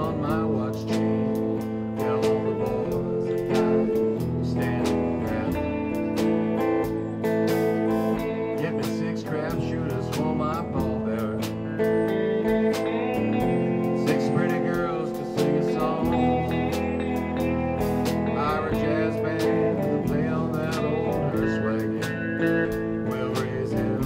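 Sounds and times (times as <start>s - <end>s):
drum kit with cymbals: 0.0s - 24.0s
electric guitar bent notes: 0.0s - 24.0s
keyboard: 0.0s - 24.0s.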